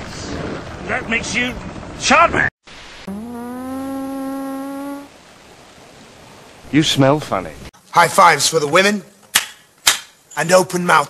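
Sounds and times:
buzzing tone: 3.0 - 5.2.

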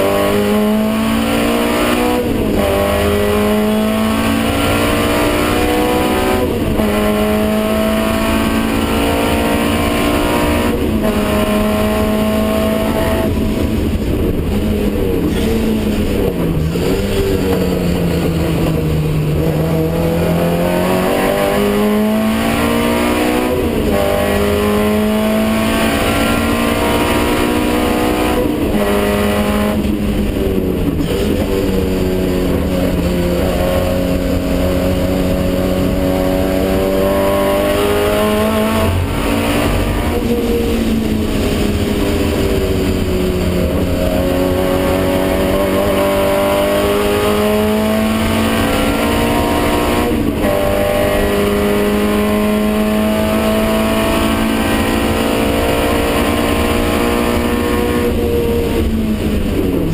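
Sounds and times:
racing car engine revving: 0.0 - 59.9.

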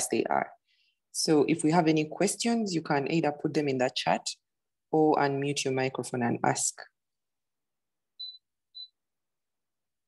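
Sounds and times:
high-pitched electronic beeps: 8.2 - 8.9.

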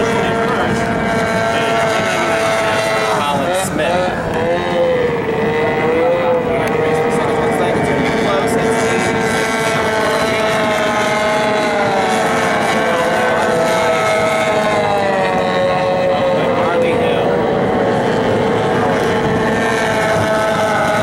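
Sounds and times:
racing boat outboard motors whining: 0.0 - 21.0.

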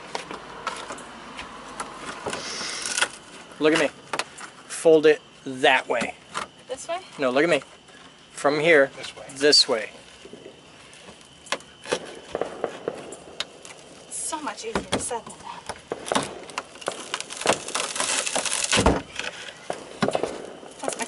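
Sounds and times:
debris cracking and knocking: 15.9 - 21.0.

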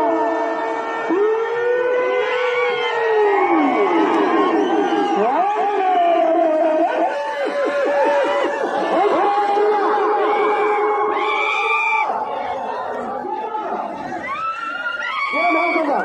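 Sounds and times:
crowd shouting and whooping: 0.0 - 16.0.

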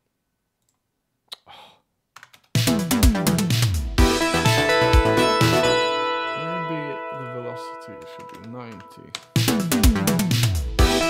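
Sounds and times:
synth-pop drums and arrangement: 2.5 - 6.3, 8.0 - 11.0
held synth pad chord: 4.2 - 8.0.

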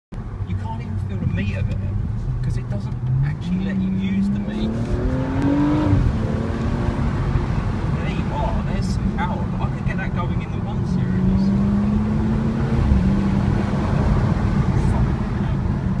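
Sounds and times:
road and tyre rumble: 0.1 - 16.0
car engine accelerating: 0.2 - 16.0.

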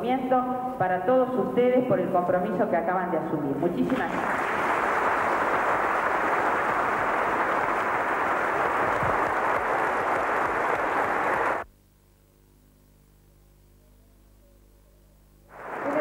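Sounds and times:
faint hum: 0.0 - 16.0
audience applauding: 4.1 - 11.7, 15.5 - 16.0.

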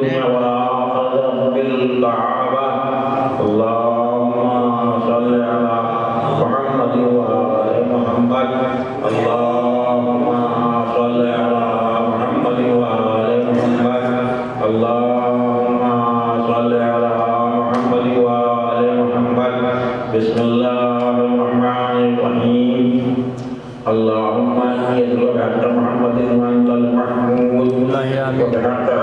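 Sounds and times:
man chanting through loudspeakers: 0.0 - 29.0.

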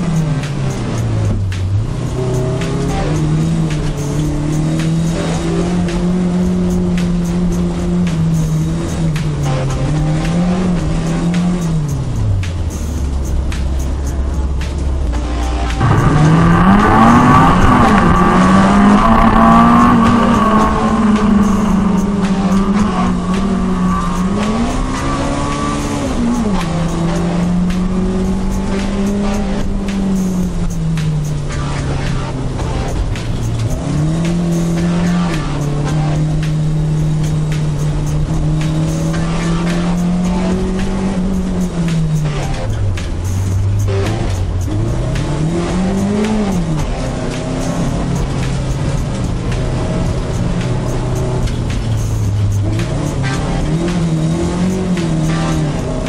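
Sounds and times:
car engine accelerating: 0.0 - 56.0
tires squealing: 0.0 - 56.0.

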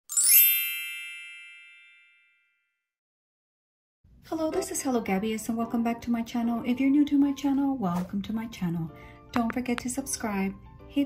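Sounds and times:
bright bell-like chime: 0.0 - 2.8.

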